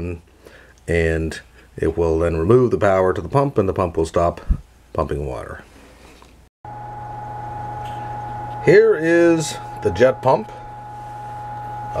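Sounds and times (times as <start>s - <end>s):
electrical hum: 6.7s - 12.0s
faint high whine: 6.7s - 12.0s.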